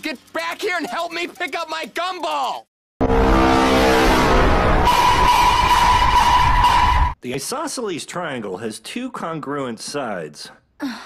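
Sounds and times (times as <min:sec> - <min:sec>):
distorted heavy rumble: 0:03.0 - 0:07.2.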